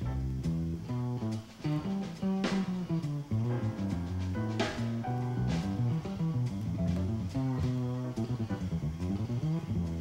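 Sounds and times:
piano notes: 0.0s - 10.0s
plucked double bass: 0.0s - 10.0s.

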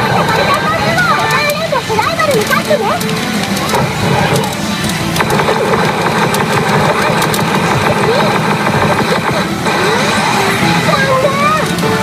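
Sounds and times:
pachinko machine music: 0.0s - 12.0s
rapid clicks: 0.0s - 12.0s.

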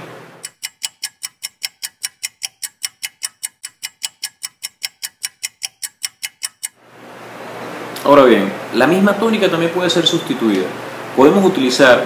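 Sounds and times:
fast high-pitched clicking: 0.4s - 6.8s.

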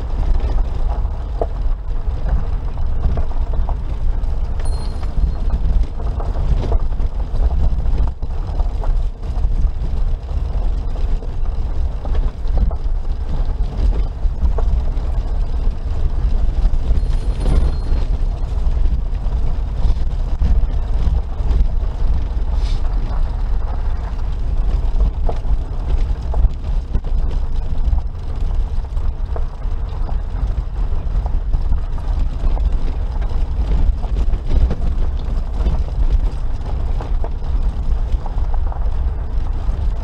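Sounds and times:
car engine rumble: 0.0s - 40.0s
tyres on gravel: 0.0s - 40.0s.

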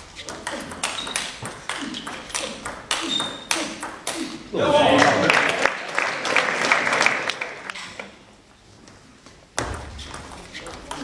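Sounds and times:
shoes squeaking on floor: 0.0s - 2.3s.

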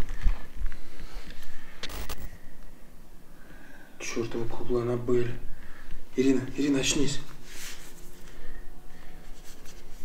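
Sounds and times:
faint steady hum: 0.0s - 10.0s
hand rustling hair and clothing: 6.2s - 10.0s.

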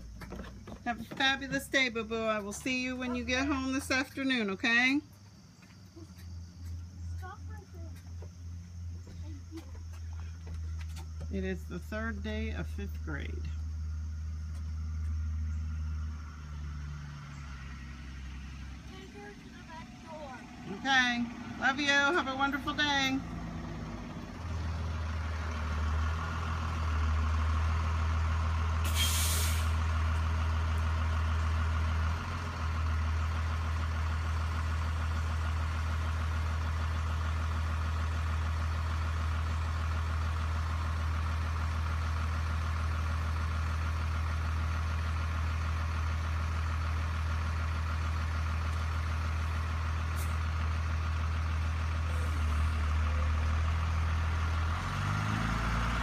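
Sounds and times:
diesel bus idling: 0.0s - 56.0s
air brake hiss: 28.8s - 29.8s.

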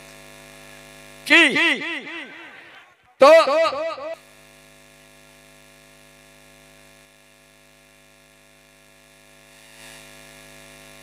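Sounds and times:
electrical mains hum: 0.0s - 9.4s.

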